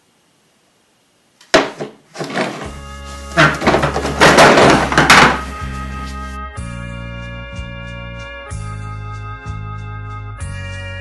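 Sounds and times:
music with steady bass line: 4.8s - 11.0s.

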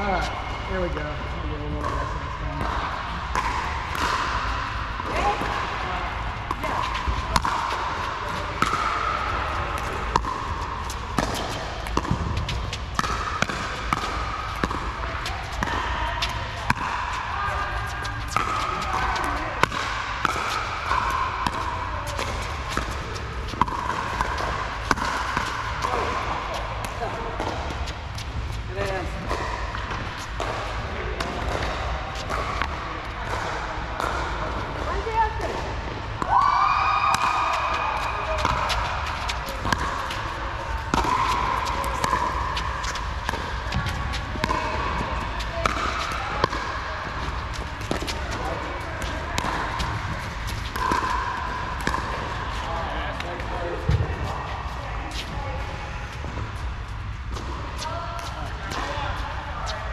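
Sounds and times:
ball bouncing on court: 0.0s - 59.9s.

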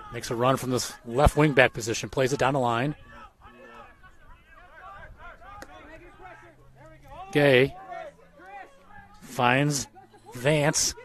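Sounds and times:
faint shouts and chatter: 0.0s - 11.0s.

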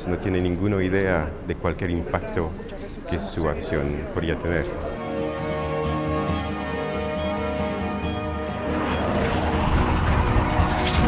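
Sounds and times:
film trailer music: 5.0s - 11.0s
jet aircraft passing over: 8.5s - 11.0s
sharp crack: 9.4s - 11.0s.

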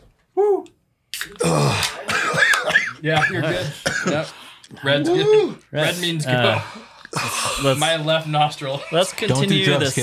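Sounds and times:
men coughing: 1.4s - 4.4s
men exclaiming: 5.0s - 5.6s.

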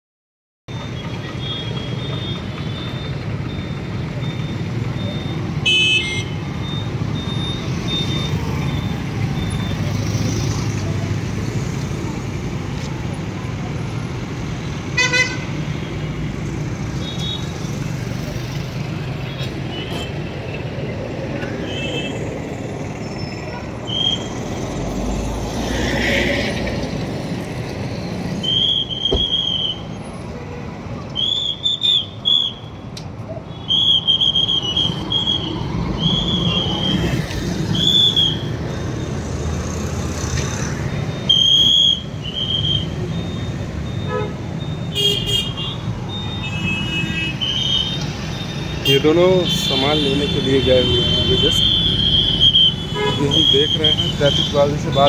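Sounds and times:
rumble of passing engines: 16.1s - 28.4s, 34.8s - 41.4s
horn honks: 44.0s - 45.8s, 48.8s - 55.0s.

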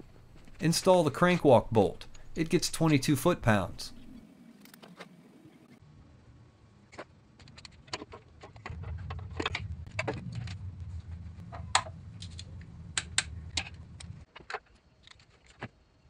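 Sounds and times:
low rumble of handling: 8.4s - 14.3s.

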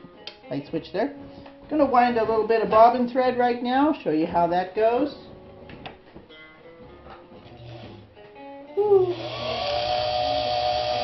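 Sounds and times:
sewing machine motor whine: 7.5s - 8.0s, 9.0s - 11.0s.

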